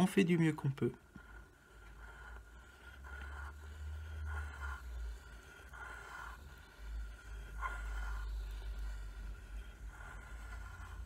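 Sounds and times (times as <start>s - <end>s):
pencil scratching on paper: 0.0s - 11.0s.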